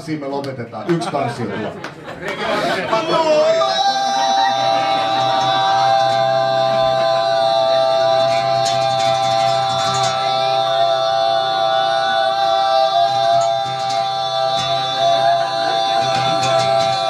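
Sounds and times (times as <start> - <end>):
guitar: 3.0 - 17.0
men singing through microphones: 3.2 - 17.0
steady high tone: 3.8 - 17.0.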